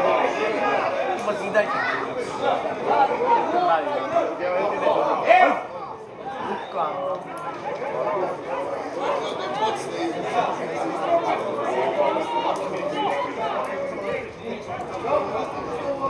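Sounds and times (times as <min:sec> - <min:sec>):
overlapping chatter of voices: 0:00.0 - 0:16.0.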